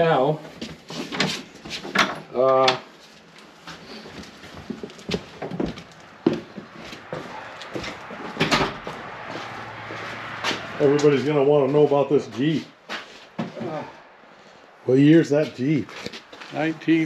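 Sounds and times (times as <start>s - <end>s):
footsteps: 2.9s - 17.0s
knocks and scuffs: 3.0s - 10.8s, 11.6s - 13.9s.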